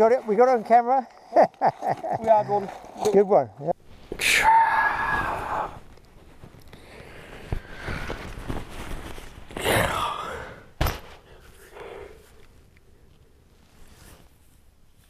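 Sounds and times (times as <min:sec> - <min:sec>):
man yawning groan: 0:04.2 - 0:05.8, 0:09.6 - 0:10.7.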